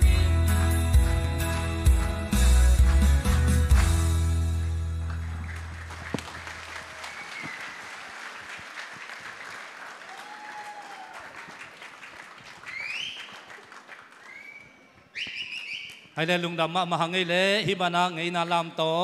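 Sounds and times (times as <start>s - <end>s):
audience applauding: 0.6s - 4.2s, 5.0s - 16.0s
whistles: 7.0s - 7.9s, 12.7s - 13.5s, 14.2s - 16.2s.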